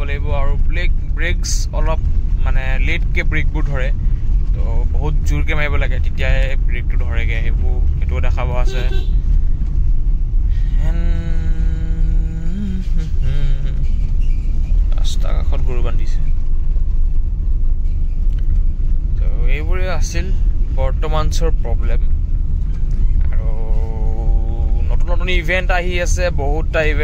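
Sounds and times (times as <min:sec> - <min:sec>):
man talking: 0:00.0 - 0:09.1, 0:10.5 - 0:13.8, 0:14.9 - 0:16.3, 0:19.2 - 0:22.1, 0:23.3 - 0:27.0
car cabin road and engine rumble: 0:00.0 - 0:27.0.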